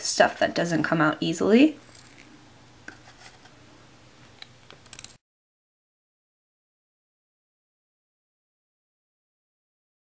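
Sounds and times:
plastic spoon scraping bottle cap: 0:02.9 - 0:03.5.

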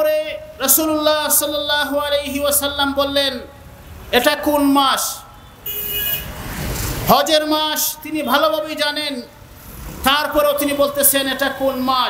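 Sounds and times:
motor vehicle passing: 0:05.6 - 0:07.1, 0:09.4 - 0:11.8.

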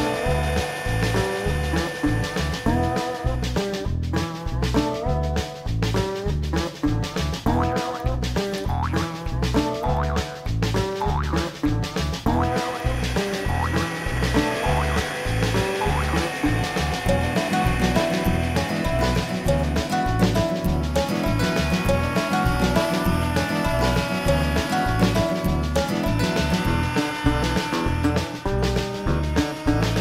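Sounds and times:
music with pulsing bass beat: 0:00.0 - 0:30.0.

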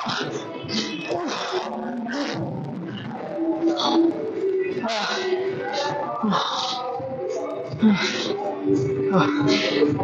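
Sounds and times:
held drawn-out vocal sound: 0:00.0 - 0:10.0.

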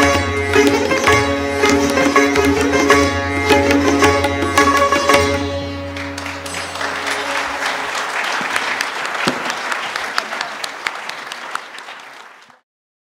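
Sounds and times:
ringing sitar notes: 0:00.0 - 0:08.4
audience applauding: 0:05.9 - 0:12.6.

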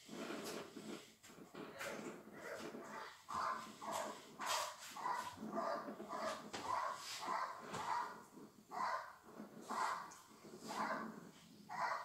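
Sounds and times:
dog barking rapidly: 0:03.0 - 0:10.1, 0:11.7 - 0:12.0.

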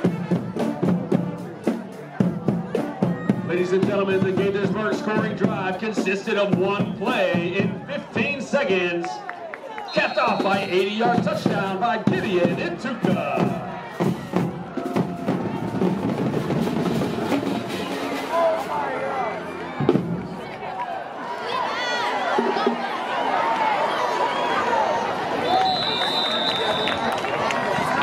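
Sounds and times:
music with drum beat: 0:00.0 - 0:08.2, 0:10.0 - 0:18.8
crowd chatter: 0:00.0 - 0:28.0.

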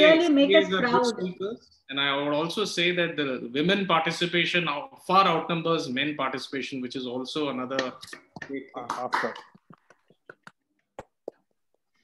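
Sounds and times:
hand claps: 0:07.7 - 0:11.4.

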